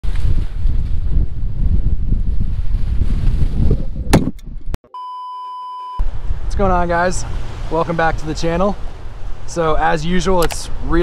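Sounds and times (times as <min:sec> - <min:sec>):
wind buffeting microphone: 0:00.0 - 0:04.8
steady electronic beep: 0:04.9 - 0:06.0
sharp clicks: 0:10.4 - 0:10.7.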